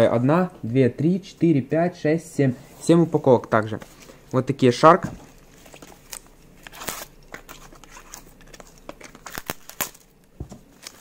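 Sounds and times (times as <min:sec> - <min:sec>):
plastic wrapping crinkling: 0:05.2 - 0:11.0.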